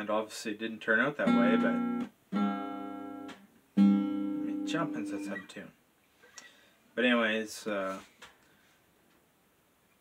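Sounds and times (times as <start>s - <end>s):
acoustic guitar chords strummed: 1.2s - 5.5s.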